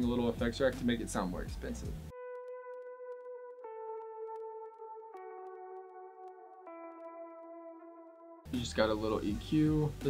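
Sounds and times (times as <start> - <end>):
ambient electric guitar: 1.9 - 10.0.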